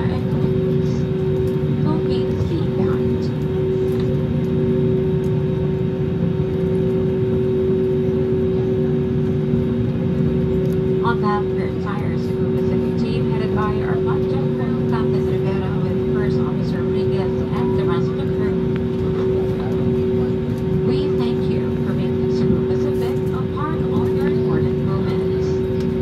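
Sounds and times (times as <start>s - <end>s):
people talking: 0.0s - 1.1s, 1.8s - 3.4s, 11.0s - 25.7s
jet engines humming: 0.0s - 26.0s.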